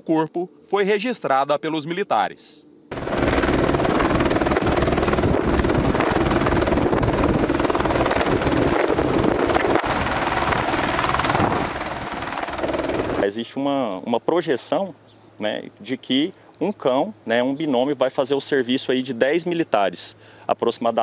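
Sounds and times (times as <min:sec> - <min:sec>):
high turbine whine: 0:02.7 - 0:13.4
helicopter rotor beat: 0:02.9 - 0:13.2.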